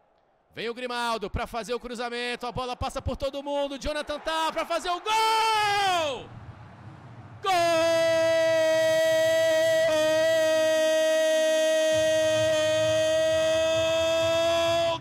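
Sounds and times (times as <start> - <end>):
commentator's long goal shout: 2.7 - 6.2, 7.4 - 15.0.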